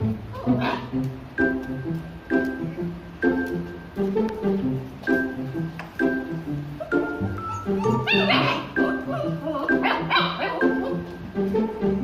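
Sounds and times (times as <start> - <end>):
background music: 0.0 - 12.0
dog barking: 0.5 - 0.9, 7.8 - 8.8, 9.8 - 11.0.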